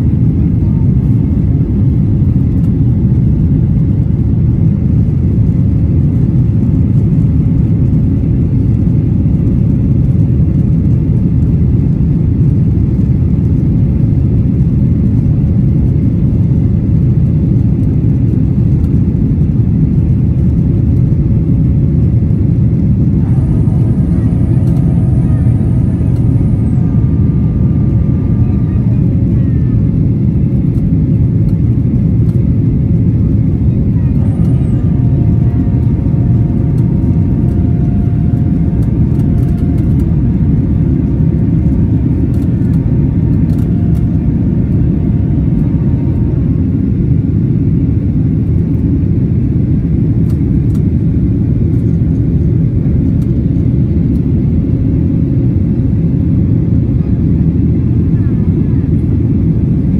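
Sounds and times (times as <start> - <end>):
faint engine whine: 0.0 - 59.9
jet engine cabin roar: 0.0 - 59.9.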